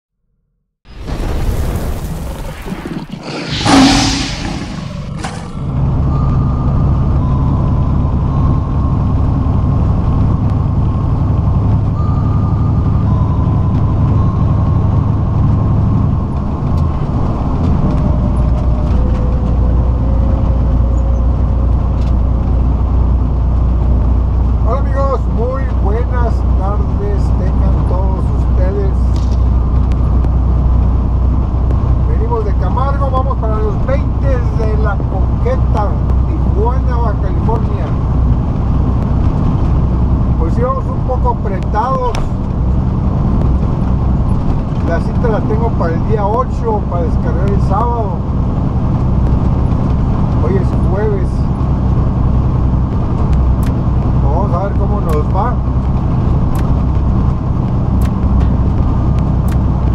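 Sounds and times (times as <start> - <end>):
whoosh and boom effect: 0.9 - 6.0
truck diesel engine running: 4.1 - 59.9.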